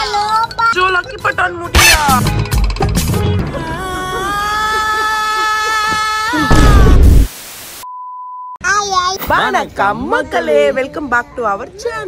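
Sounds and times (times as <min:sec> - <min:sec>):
loud burst of noise: 0:06.4 - 0:07.8
static hiss: 0:06.8 - 0:07.8.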